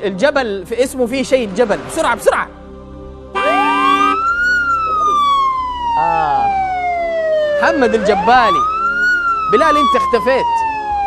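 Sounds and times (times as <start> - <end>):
descending game-show tone: 3.4 - 4.2.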